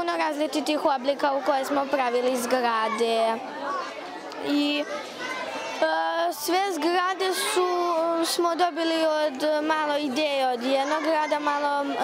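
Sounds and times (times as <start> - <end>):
children chattering in large hall: 0.0 - 12.0.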